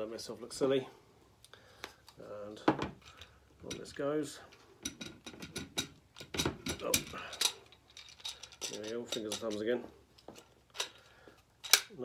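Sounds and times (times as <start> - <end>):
plastic pump parts clicking: 11.6 - 11.9.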